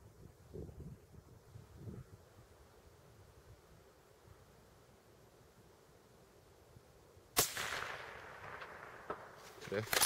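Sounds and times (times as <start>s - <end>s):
gunshot echo: 7.4s - 9.4s
rifle shot: 7.4s - 10.0s.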